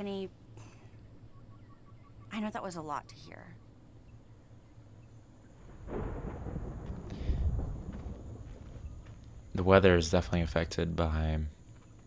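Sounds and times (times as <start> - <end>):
low thunder rumble: 5.6 - 10.7.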